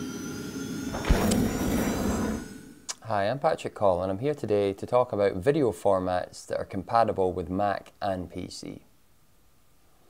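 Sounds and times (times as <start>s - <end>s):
whooshing swell: 0.0s - 3.0s
sudden deep hit: 0.9s - 2.6s.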